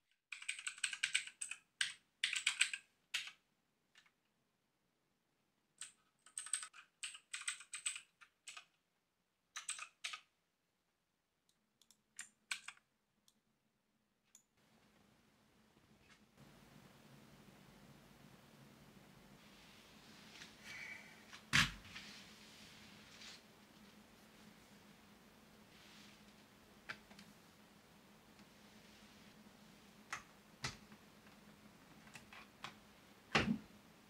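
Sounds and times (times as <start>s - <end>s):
mechanical keyboard typing: 0.3s - 3.4s, 5.8s - 8.7s, 9.6s - 10.3s, 12.2s - 12.8s.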